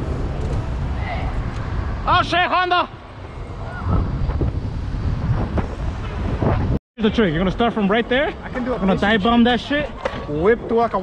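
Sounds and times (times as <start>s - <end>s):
wind buffeting microphone: 0.0s - 6.8s.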